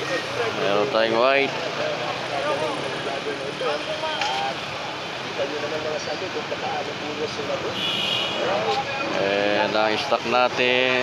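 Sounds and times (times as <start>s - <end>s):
people talking: 0.0s - 11.0s
steady traffic noise: 0.0s - 11.0s.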